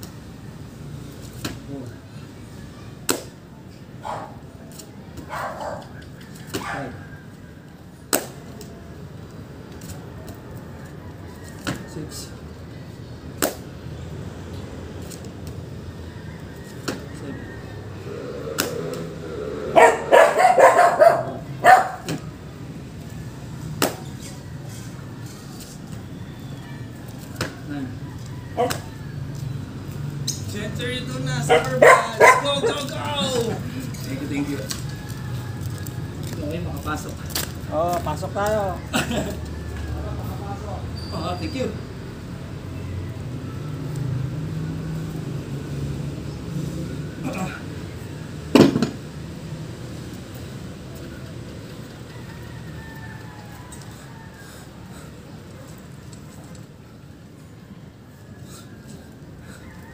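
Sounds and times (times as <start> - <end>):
pitched calls: 16.2 - 22.1
hands and feet slapping a mat: 23.8 - 24.0.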